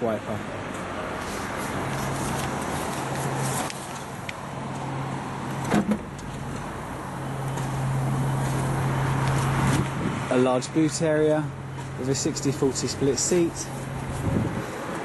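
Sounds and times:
outdoor background noise: 0.0 - 15.0
car tailgate clunk: 5.6 - 6.1.

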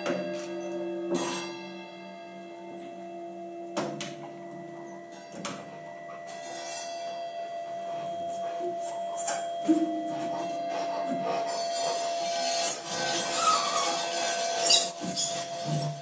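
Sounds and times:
long held tones: 12.2 - 16.0.

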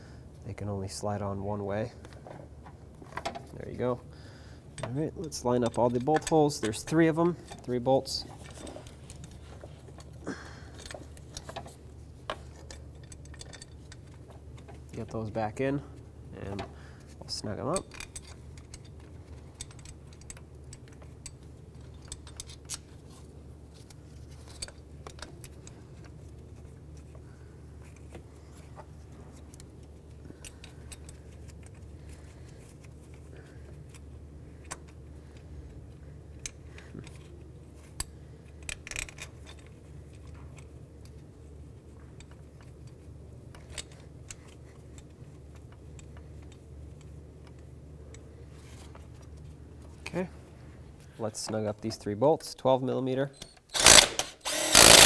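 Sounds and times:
metal bolts clinking: 4.8 - 9.3.

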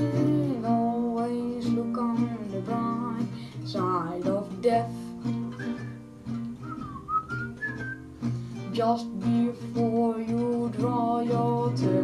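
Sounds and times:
strummed acoustic guitar: 0.0 - 12.0
boy whistling a melody: 5.4 - 8.1.

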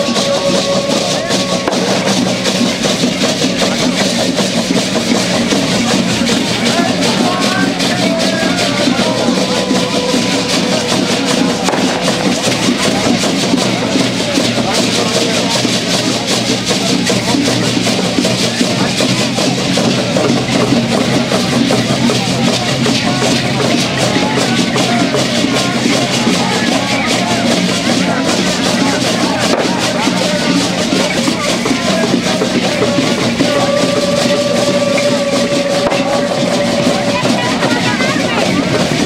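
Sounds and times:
dancers' rattles rattling: 0.0 - 39.0
hand drum beating: 0.0 - 39.0.

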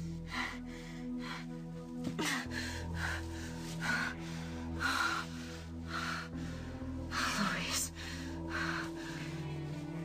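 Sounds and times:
dramatic underscore music: 0.0 - 10.0.

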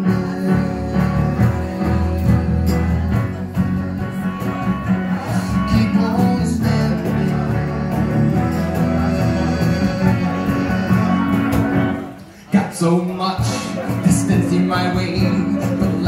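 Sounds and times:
electric bass line: 0.0 - 12.2, 13.4 - 16.0
keyboard chords: 0.0 - 16.0.

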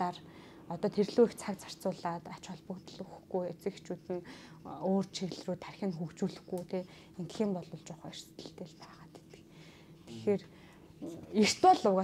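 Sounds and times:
soft whispering voice: 1.1 - 11.4.

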